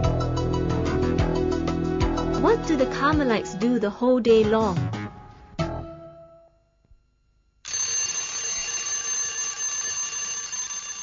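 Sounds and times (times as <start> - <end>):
alarm clock ringing: 7.6 - 11.0.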